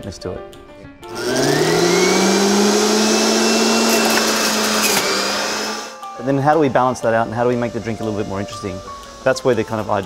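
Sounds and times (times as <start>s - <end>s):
juicer whining: 1.0s - 6.1s.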